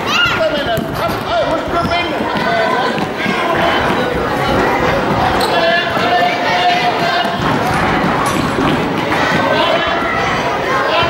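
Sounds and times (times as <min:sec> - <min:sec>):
children shouting: 0:00.0 - 0:11.0
onlookers' voices echoing: 0:00.0 - 0:11.0
running footsteps: 0:00.0 - 0:11.0.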